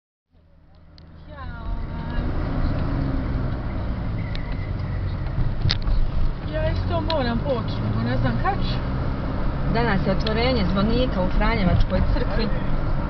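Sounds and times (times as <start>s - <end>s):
car engine and road rumble: 0.3s - 13.0s.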